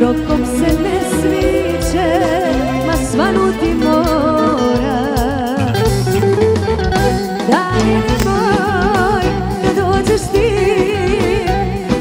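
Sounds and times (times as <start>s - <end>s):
woman singing with vibrato: 0.0s - 5.9s, 7.1s - 12.0s.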